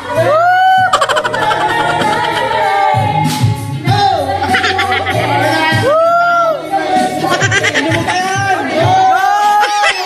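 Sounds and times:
woman singing karaoke: 0:00.0 - 0:09.0
backing music: 0:00.0 - 0:10.0.

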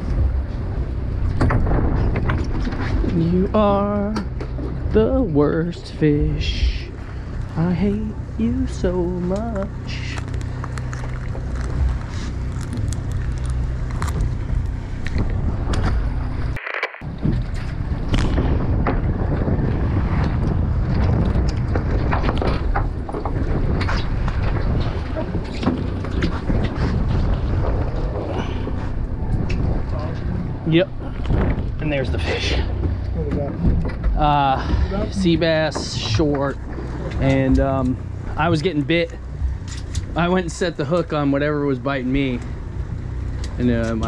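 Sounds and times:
boat engine humming: 0:00.0 - 0:44.0
sea against hull: 0:00.0 - 0:44.0
wind: 0:00.0 - 0:44.0.

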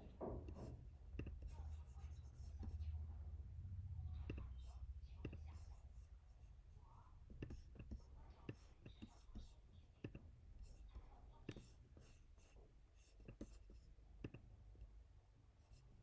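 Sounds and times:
low room hum: 0:00.0 - 0:16.0
computer mouse clicks: 0:07.3 - 0:10.3, 0:14.2 - 0:14.5.

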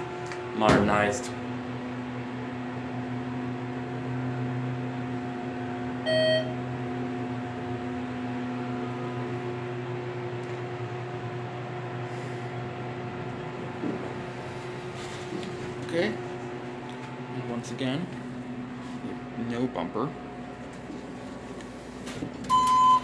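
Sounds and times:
steady electrical hum: 0:00.0 - 0:23.0
short elevator beep: 0:06.0 - 0:07.6, 0:22.4 - 0:23.0.

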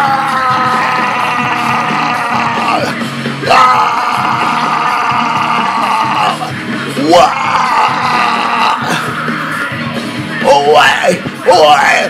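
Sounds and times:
heavy rock guitar chords: 0:00.0 - 0:10.5
person yelling: 0:03.5 - 0:09.0.

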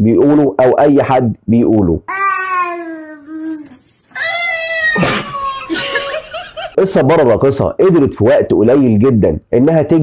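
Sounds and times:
toy high-pitched squeaky voice: 0:02.1 - 0:05.6.

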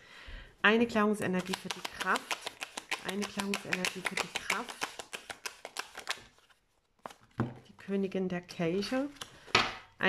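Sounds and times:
cards being shuffled: 0:01.2 - 0:07.6, 0:08.8 - 0:09.5.

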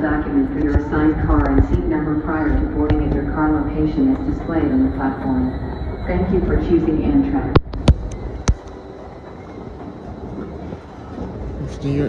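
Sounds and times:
escalator rumbling: 0:00.0 - 0:12.0
station hall hum: 0:00.0 - 0:12.0.

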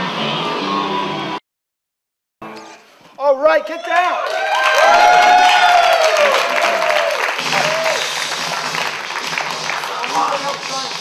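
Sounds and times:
whoops and cheers: 0:03.7 - 0:08.2
audience applauding: 0:04.1 - 0:11.0.

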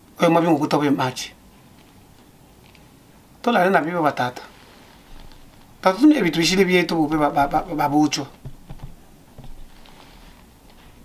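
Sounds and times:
man speaking: 0:00.2 - 0:01.4, 0:05.8 - 0:08.4.

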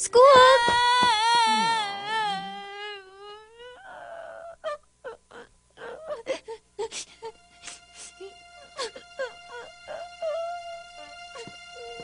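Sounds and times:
girl crying and sobbing: 0:00.0 - 0:12.0.

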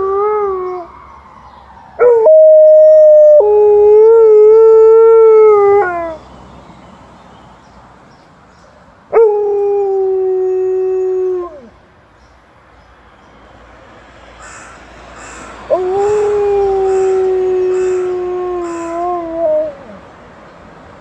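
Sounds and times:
ambulance siren: 0:00.0 - 0:06.2, 0:15.4 - 0:19.9
dog howling: 0:15.7 - 0:20.0.

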